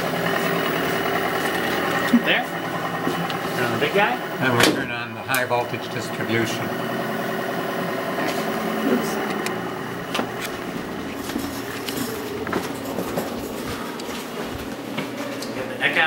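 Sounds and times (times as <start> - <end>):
machinery hum: 0.0 - 16.0.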